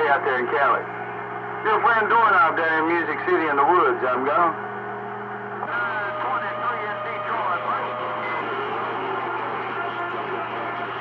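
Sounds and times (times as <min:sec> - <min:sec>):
faint garbled radio voices: 0:00.0 - 0:11.0
steady hum: 0:00.0 - 0:11.0
radio static hiss: 0:05.6 - 0:11.0.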